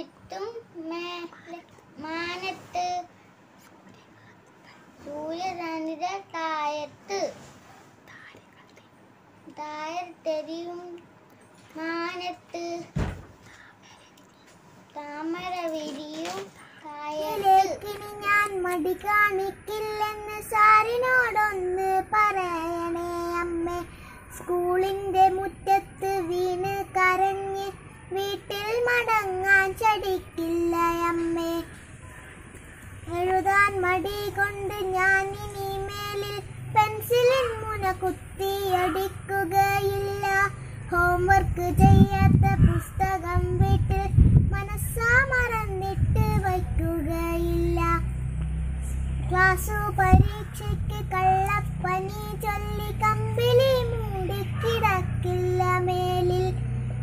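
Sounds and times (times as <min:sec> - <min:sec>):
girl singing solo: 0:32.9 - 0:48.1.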